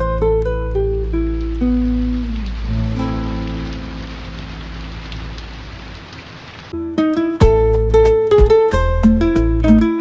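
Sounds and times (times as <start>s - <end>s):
instrumental song backing: 0.0s - 4.6s, 6.8s - 10.0s
rain patter: 0.0s - 9.9s.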